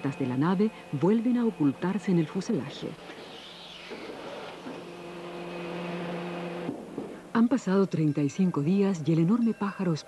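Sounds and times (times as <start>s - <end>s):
hydraulic hum: 0.0s - 7.4s.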